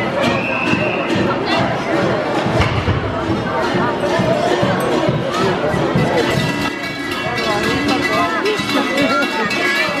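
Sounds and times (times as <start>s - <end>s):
crowd voices: 0.0s - 10.0s
large cowbells clanging: 0.0s - 10.0s.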